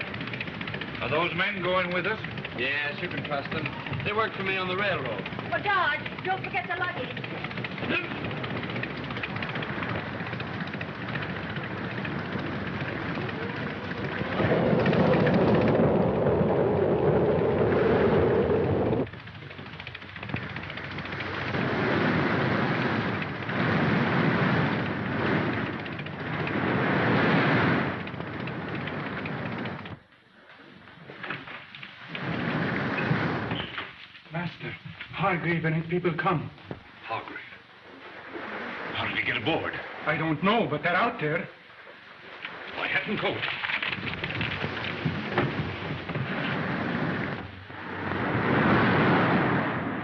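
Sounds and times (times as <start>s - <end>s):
rain rushing: 0.0s - 30.9s, 31.6s - 41.7s, 42.5s - 50.0s
wind: 0.0s - 50.0s
rolling thunder: 8.2s - 19.2s.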